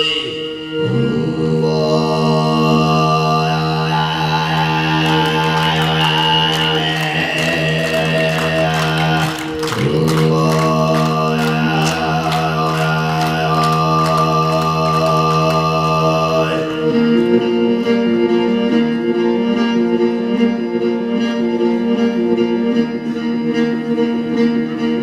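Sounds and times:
throat singing drone with overtones: 0.0 - 25.0
bowed fiddle: 10.8 - 25.0.

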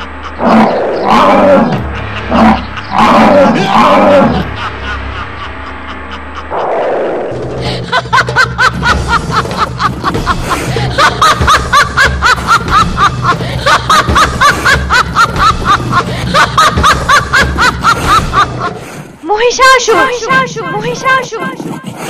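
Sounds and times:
low droning music: 0.0 - 22.0
villain's rapid laugh: 1.2 - 6.7, 7.5 - 19.0.

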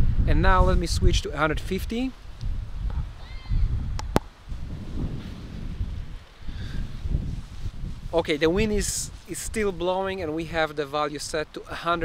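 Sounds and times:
wind buffeting a microphone: 0.0 - 12.0.

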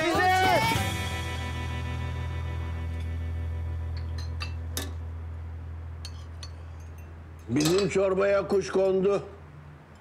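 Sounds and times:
low steady hum: 1.0 - 10.0
cutlery and dishes clinking: 4.0 - 5.0, 6.0 - 8.0.

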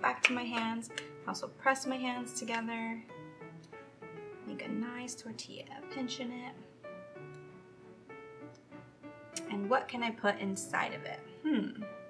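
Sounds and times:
soft keyboard music: 0.0 - 12.0.

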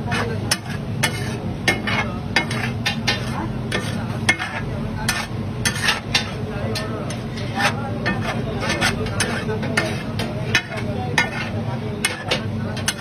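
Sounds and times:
food sizzling on griddle: 0.0 - 13.0
metal utensils scraping griddle: 0.0 - 13.0.

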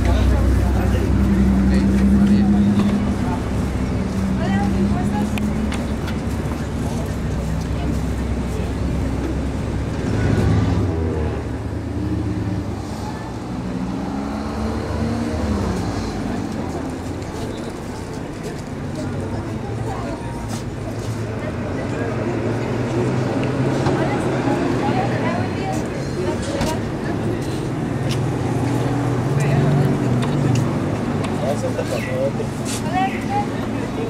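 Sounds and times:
people talking: 0.0 - 9.7, 15.2 - 34.0.

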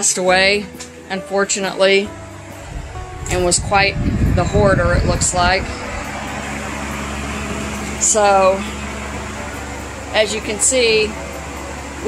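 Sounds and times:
low mechanical hum: 2.1 - 12.0.

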